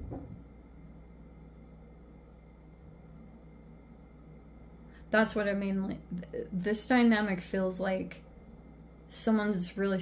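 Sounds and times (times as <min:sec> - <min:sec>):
faint steady low hum: 0:00.0 - 0:10.0.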